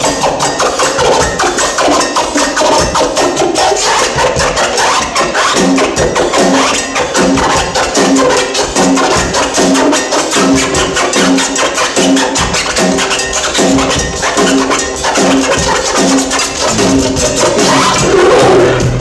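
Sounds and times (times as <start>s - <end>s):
live band instrumental: 0.0s - 19.0s
low repeating riff: 16.4s - 18.6s.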